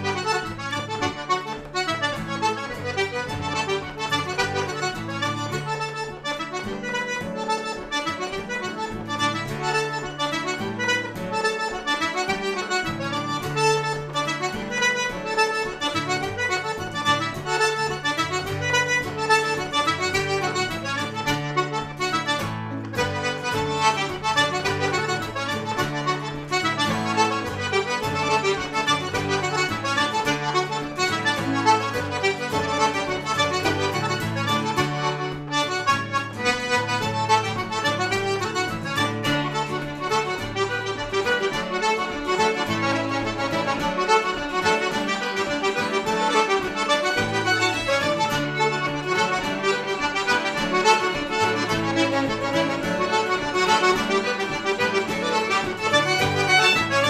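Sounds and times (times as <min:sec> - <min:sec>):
acoustic guitar strumming chords: 0:00.0 - 0:57.0
button accordion tune: 0:00.0 - 0:57.0
fiddle: 0:00.0 - 0:57.0.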